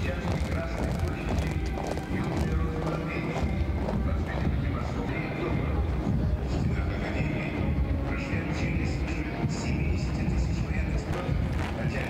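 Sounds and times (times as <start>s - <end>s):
marching boots on cobblestones: 0.0s - 12.0s.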